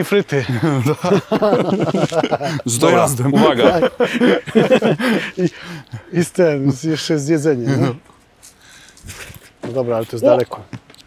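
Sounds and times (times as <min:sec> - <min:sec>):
men talking: 0:00.0 - 0:08.2, 0:09.1 - 0:10.7.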